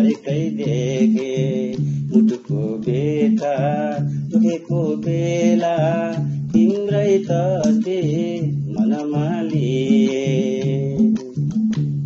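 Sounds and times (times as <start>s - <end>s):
man singing folk song: 0.0s - 12.0s
plucked string instrument: 0.0s - 12.0s.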